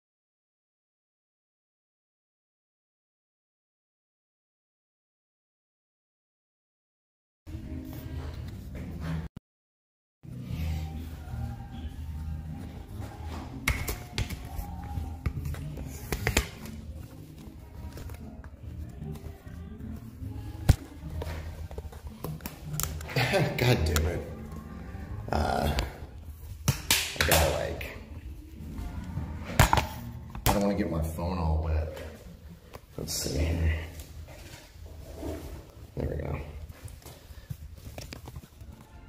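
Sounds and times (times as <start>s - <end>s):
background music: 7.5s - 9.3s, 10.2s - 39.0s
indistinct voices: 14.2s - 26.4s.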